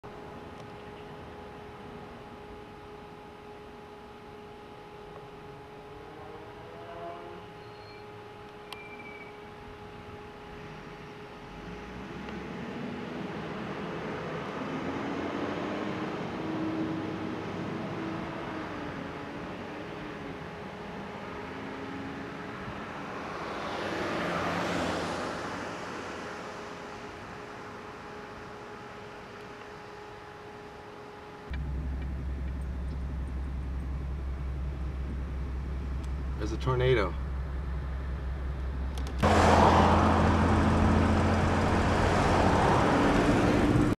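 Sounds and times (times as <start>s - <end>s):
road traffic: 0.0s - 43.9s
faint high hum: 0.1s - 23.5s, 25.1s - 39.3s
vehicle passing: 21.5s - 26.4s, 39.1s - 43.9s
steady low rumble: 31.4s - 43.9s.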